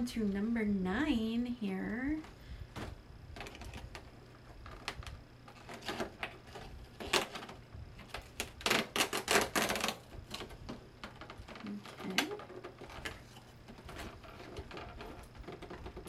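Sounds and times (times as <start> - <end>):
rustling and crackling: 0.0 - 16.0
cardboard clicks and crinkles: 2.8 - 16.0.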